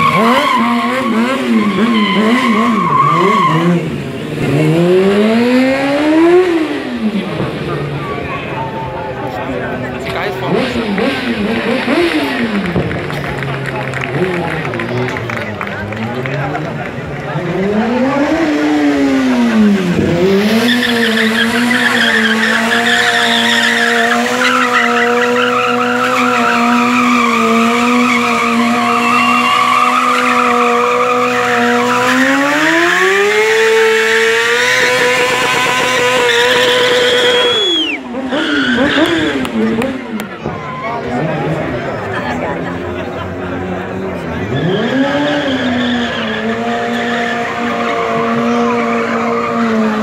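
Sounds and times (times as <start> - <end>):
tyre squealing: 0.0 - 3.7, 20.6 - 32.3
motorcycle engine revving high: 0.0 - 8.5, 9.8 - 40.4, 41.0 - 50.0.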